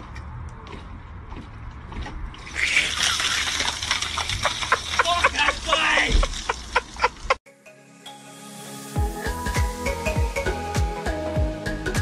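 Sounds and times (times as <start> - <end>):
water gushing from downpipe: 2.4 - 7.3.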